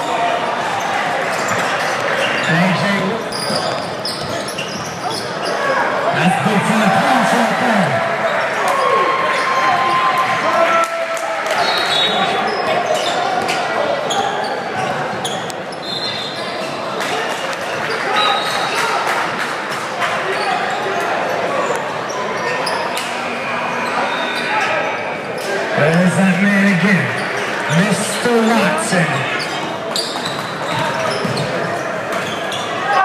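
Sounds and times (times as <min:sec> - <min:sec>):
voices of players and spectators: 0:00.0 - 0:33.0.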